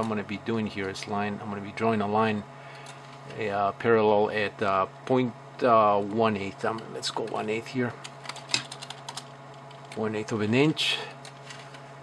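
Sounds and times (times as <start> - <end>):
low steady hum: 0.0 - 12.0
computer keyboard typing: 6.6 - 10.1.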